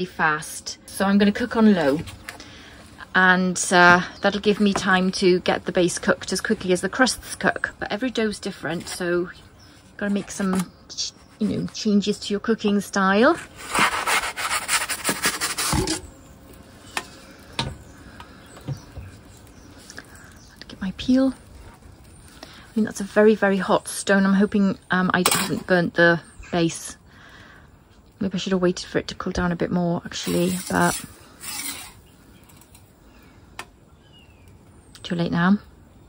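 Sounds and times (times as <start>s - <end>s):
wooden peel scraping on stone: 13.3s - 16.1s, 30.1s - 32.8s
faint bird chirps: 31.8s - 36.0s.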